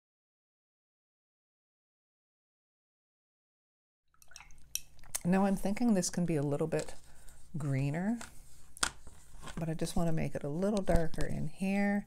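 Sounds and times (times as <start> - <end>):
low room hum: 4.2 - 12.0
person speaking: 5.1 - 8.4, 9.4 - 12.0.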